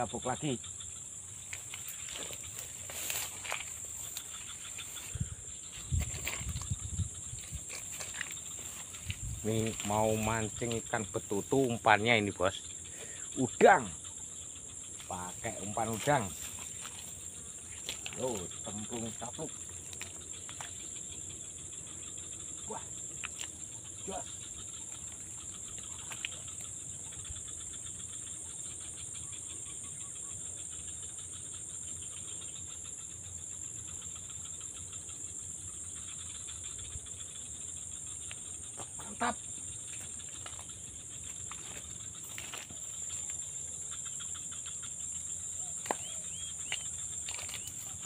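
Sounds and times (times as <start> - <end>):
insects high-pitched drone: 0.0 - 48.0.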